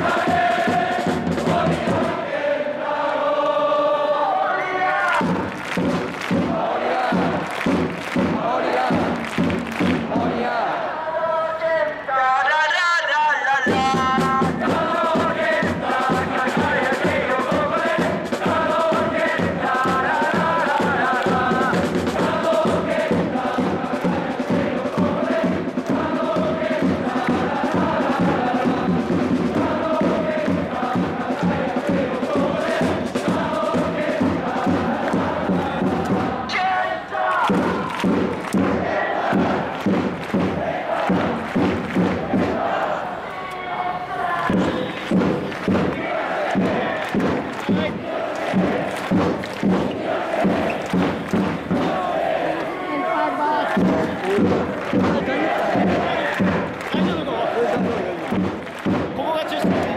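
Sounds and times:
bass drum beat: 0:00.0 - 0:02.2, 0:05.2 - 0:10.6, 0:13.7 - 0:36.5, 0:37.5 - 0:42.8, 0:44.5 - 0:52.2, 0:53.6 - 0:59.9
crowd chanting in unison: 0:00.0 - 0:59.9.

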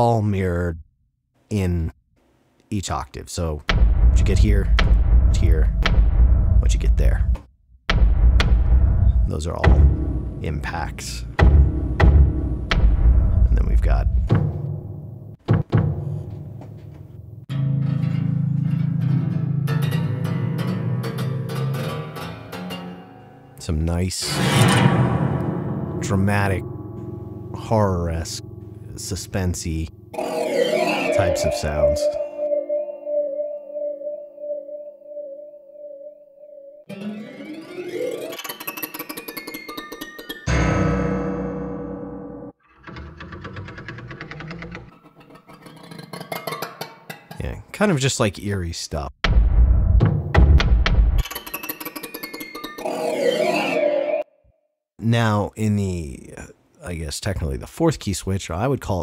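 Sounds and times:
plucked piano string strikes: 0:17.5 - 0:23.6, 0:24.4 - 0:32.8, 0:36.9 - 0:47.6
low string drone: 0:24.2 - 0:32.9
eerie piano ambient effects: 0:24.2 - 0:38.9, 0:40.5 - 0:42.6.

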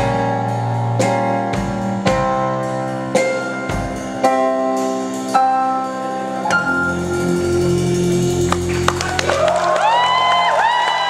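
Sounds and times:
held keyboard chord: 0:00.0 - 0:09.2
audience cheering: 0:08.5 - 0:11.0.

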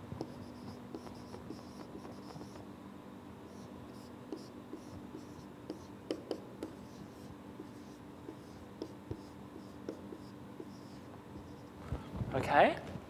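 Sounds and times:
faint room hum: 0:00.0 - 0:13.0
marker squeaking on whiteboard: 0:00.2 - 0:02.6, 0:03.5 - 0:11.7.

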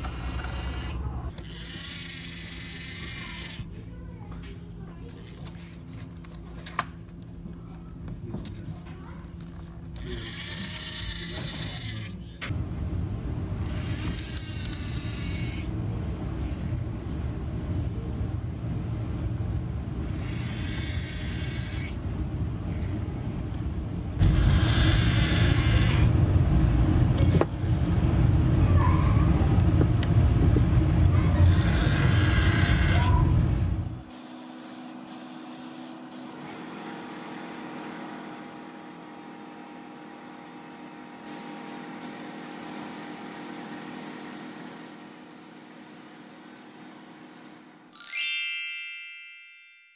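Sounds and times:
mid-pitched whirring: 0:00.0 - 0:47.8
steady low rumble: 0:26.1 - 0:31.3
airbrush hissing in bursts: 0:41.2 - 0:44.1.

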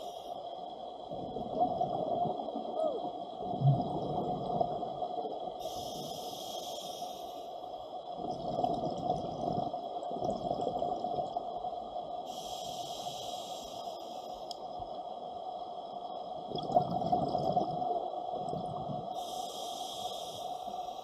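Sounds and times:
underwater regulator bubbles: 0:03.4 - 0:06.1, 0:08.2 - 0:11.4, 0:16.5 - 0:19.3.

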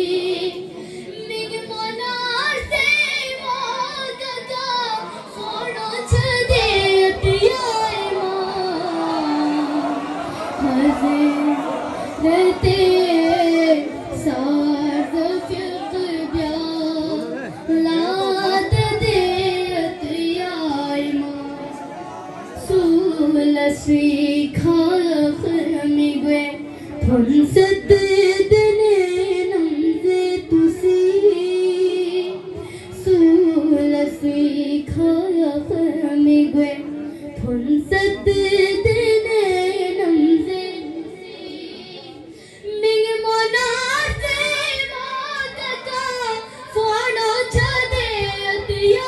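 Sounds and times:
boy singing into a microphone: 0:00.0 - 0:21.8, 0:22.5 - 0:49.0.

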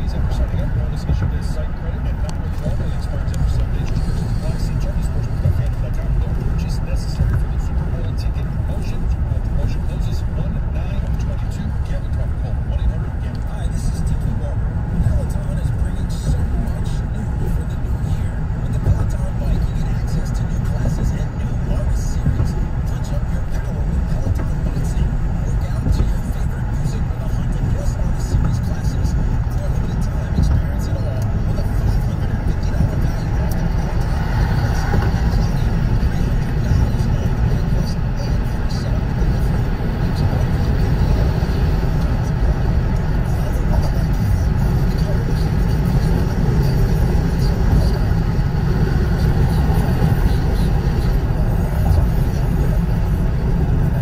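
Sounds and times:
car cabin road and engine rumble: 0:00.0 - 0:54.0.

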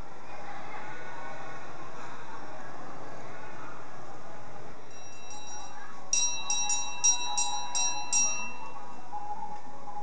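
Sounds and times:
faint steady tone: 0:04.8 - 0:10.0
small metal bell struck: 0:04.9 - 0:08.8.

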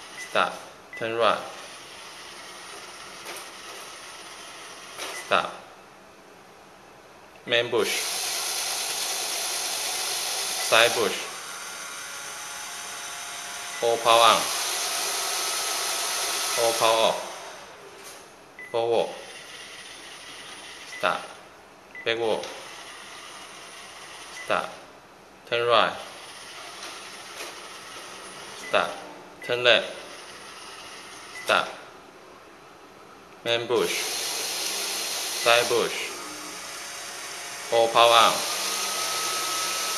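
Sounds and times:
robot vacuum drive motors: 0:07.9 - 0:18.2, 0:33.9 - 0:39.9.

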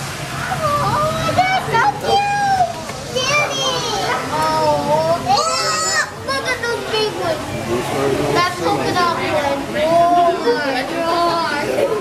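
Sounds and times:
young children talking: 0:00.3 - 0:12.0
child crying out shrilly: 0:05.3 - 0:06.2.

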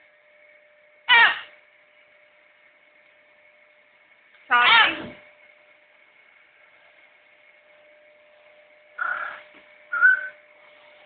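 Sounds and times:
faint steady hum: 0:00.0 - 0:11.0
macaw call: 0:01.1 - 0:01.5, 0:09.0 - 0:10.4.

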